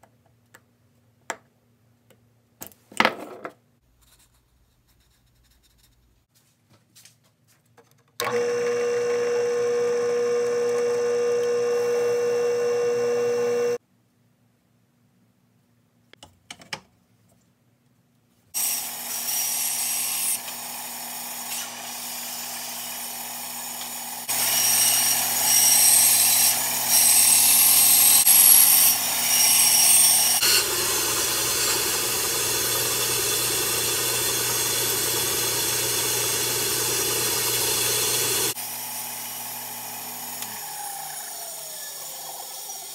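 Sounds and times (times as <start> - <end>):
bandsaw motor hum: 8.2 - 13.8, 18.6 - 42.9
bandsaw blade cutting wood: 18.6 - 42.9.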